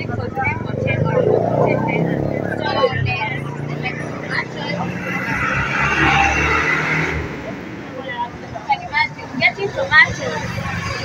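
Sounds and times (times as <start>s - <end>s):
motor vehicle running: 0.0s - 11.0s
people talking: 0.0s - 11.0s.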